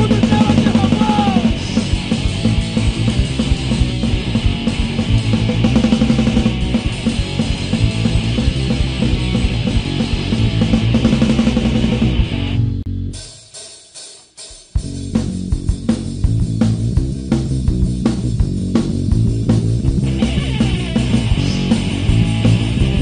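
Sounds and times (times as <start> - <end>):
punk band playing: 0.0 - 23.0.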